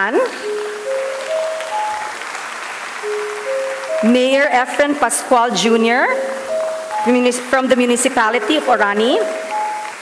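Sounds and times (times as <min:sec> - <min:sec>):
audience applauding: 0:00.4 - 0:07.4
held musical notes climbing: 0:03.0 - 0:10.0.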